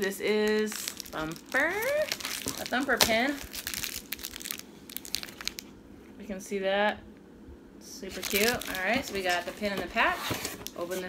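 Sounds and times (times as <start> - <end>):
plastic bag crinkling: 0.0 - 5.7, 8.1 - 11.0.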